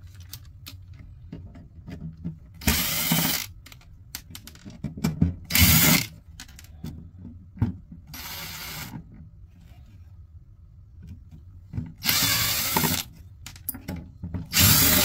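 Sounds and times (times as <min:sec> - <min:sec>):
cordless drill running: 0:02.6 - 0:03.5, 0:05.5 - 0:06.1, 0:08.2 - 0:08.9, 0:12.0 - 0:13.1, 0:14.5 - 0:15.0.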